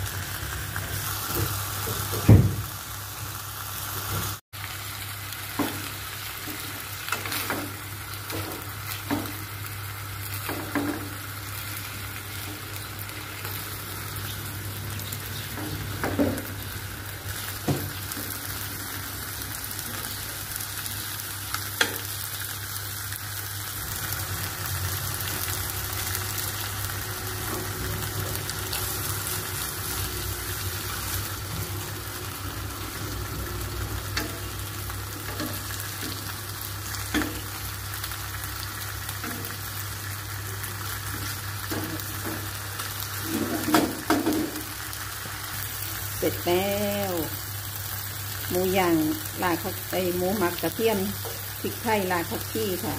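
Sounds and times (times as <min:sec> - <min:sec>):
meat sizzling in a pan: 0:00.0 - 0:52.9.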